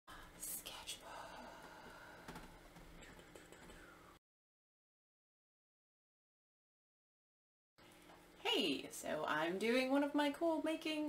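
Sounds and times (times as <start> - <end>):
woman whispering: 0.1 - 1.6.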